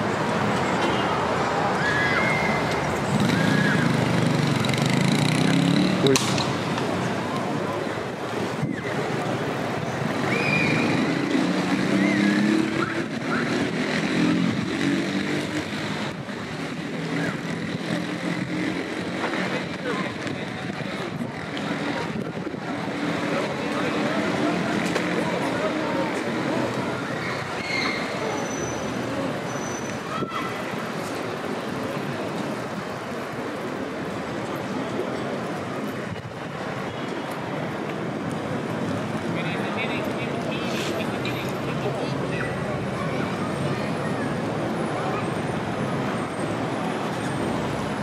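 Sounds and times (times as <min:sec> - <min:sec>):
road traffic: 0:00.0 - 0:48.0
people talking: 0:05.2 - 0:06.4, 0:18.9 - 0:31.2, 0:39.2 - 0:47.8.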